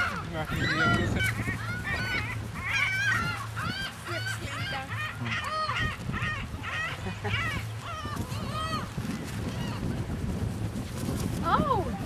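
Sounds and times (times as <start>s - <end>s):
gulls calling: 0.0s - 12.0s.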